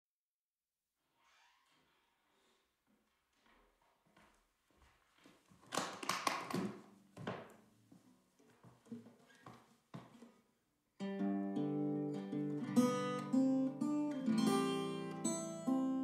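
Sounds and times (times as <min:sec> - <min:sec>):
acoustic guitar strumming chords: 0:11.0 - 0:16.0
scattered guitar sounds: 0:11.0 - 0:16.0.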